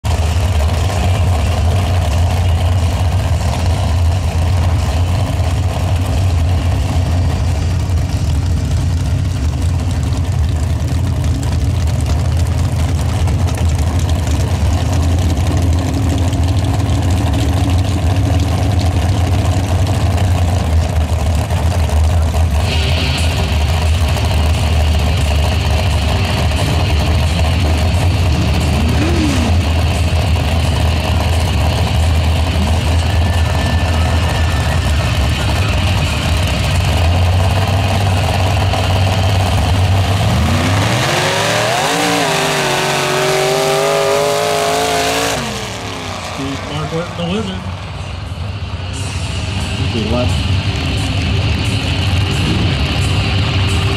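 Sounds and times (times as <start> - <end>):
engine idling rumble: 0.0 - 53.9.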